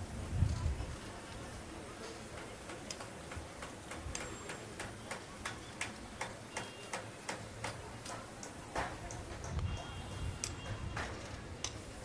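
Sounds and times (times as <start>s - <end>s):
faint regular ticking: 2.3s - 10.7s.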